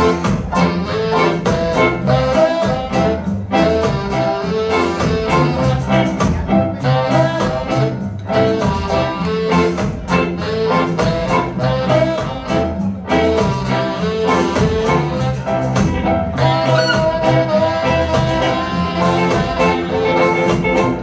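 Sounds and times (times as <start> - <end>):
saxophones holding notes: 0.0 - 21.0
ska band playing: 0.0 - 21.0.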